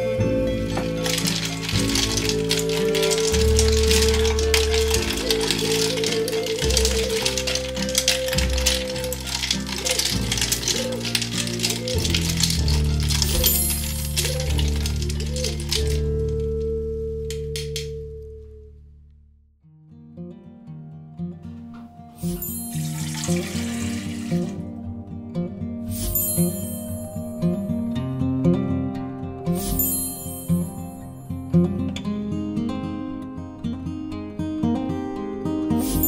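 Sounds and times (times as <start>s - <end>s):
background music: 0.0s - 18.7s, 21.8s - 36.0s
ice cubes clinking in glass pitcher: 0.6s - 16.6s, 22.2s - 24.7s, 25.9s - 27.4s, 29.6s - 31.2s, 35.8s - 36.0s.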